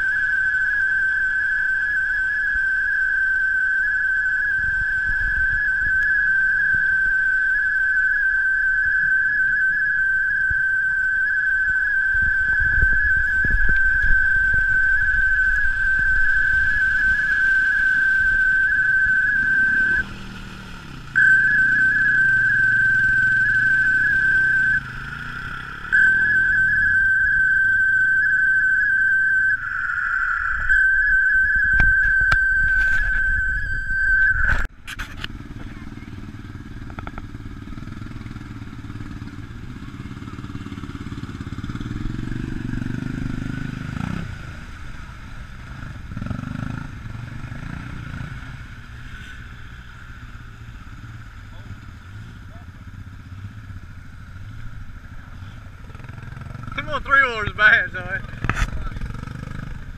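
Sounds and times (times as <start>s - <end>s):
atv engine rumble: 0.0s - 59.9s
high engine whine: 0.0s - 59.9s.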